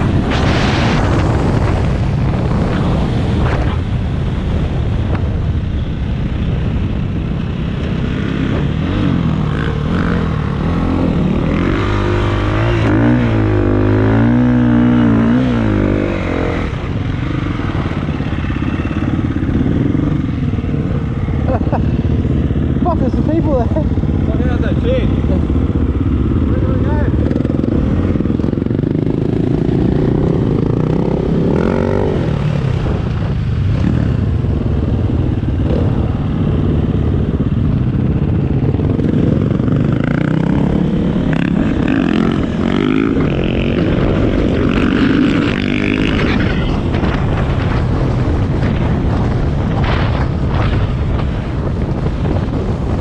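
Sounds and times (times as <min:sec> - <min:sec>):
dirt bike engine revving: 0:07.9 - 0:33.0, 0:38.1 - 0:47.8.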